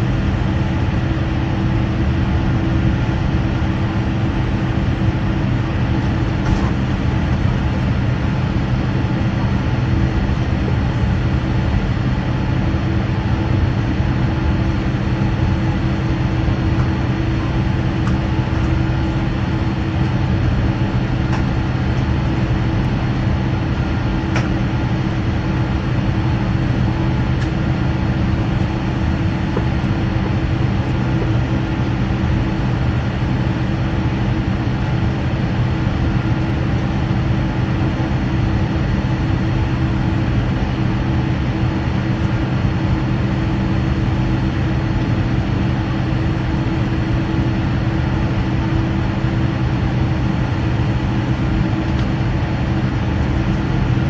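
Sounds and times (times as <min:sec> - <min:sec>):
jet engine and cabin air drone: 0:00.0 - 0:54.0.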